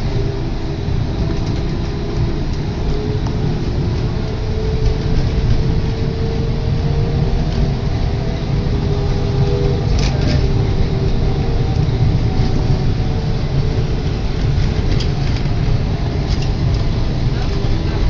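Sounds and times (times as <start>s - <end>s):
tram rumbling: 0.0s - 18.0s.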